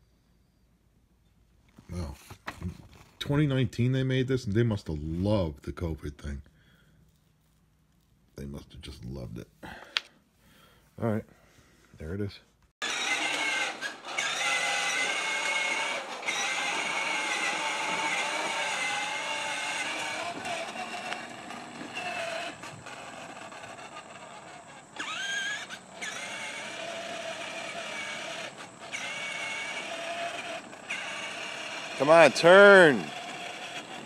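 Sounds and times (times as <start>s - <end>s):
plastic wheels rolling on asphalt: 12.8s - 34.0s
toy electric motor whining: 12.8s - 34.0s.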